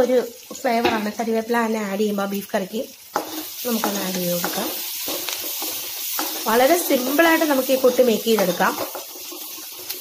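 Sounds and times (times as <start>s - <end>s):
vegetables sizzling in oil: 0.0s - 10.0s.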